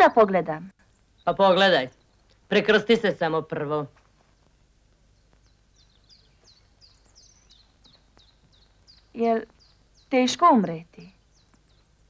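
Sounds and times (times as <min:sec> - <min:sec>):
bird chirping: 0:00.8 - 0:03.3, 0:04.2 - 0:12.0.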